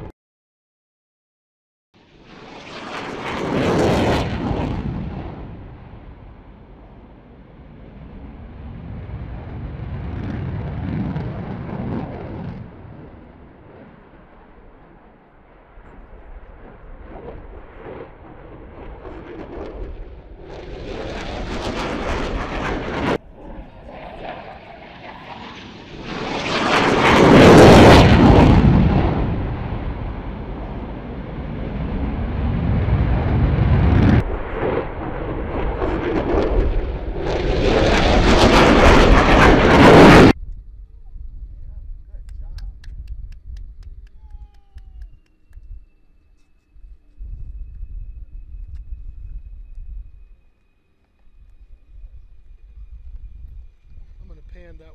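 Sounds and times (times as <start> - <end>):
fighter jet flying past: 2.0 - 40.4.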